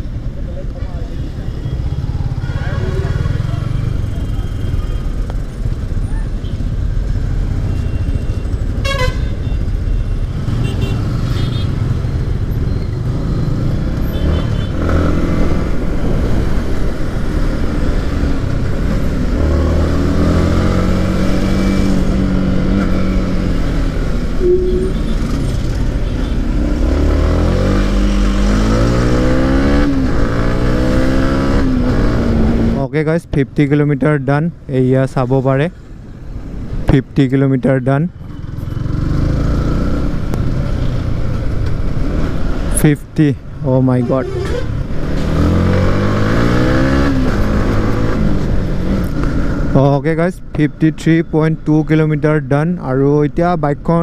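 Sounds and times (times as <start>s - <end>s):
car horns tooting: 7.7s - 9.7s, 24.4s - 26.5s.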